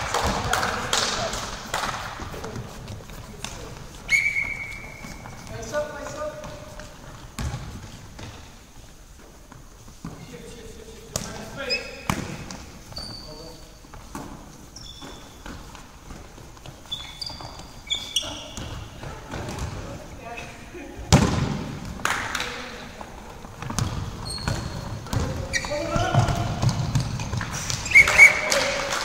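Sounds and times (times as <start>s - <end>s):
shoes squeaking on wooden floor: 2.2s - 20.7s, 23.0s - 28.7s
whistle blasts: 4.1s - 5.1s, 27.8s - 28.6s
ball bouncing and thudding: 6.4s - 8.5s, 12.0s - 13.1s, 18.5s - 19.9s, 21.1s - 22.0s, 23.4s - 27.8s
players calling out: 27.5s - 29.0s.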